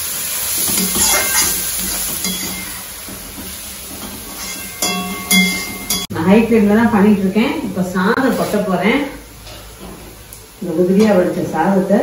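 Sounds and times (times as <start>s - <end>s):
vegetables sizzling in pan: 0.0s - 6.1s
spatula turning food: 0.4s - 6.1s.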